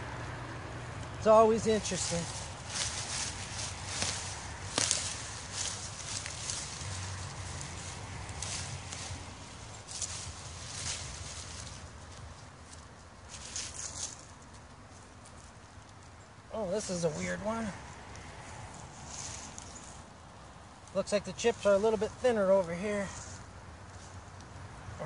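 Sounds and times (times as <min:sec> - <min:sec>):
hands digging through mulch: 0:01.2 - 0:15.6.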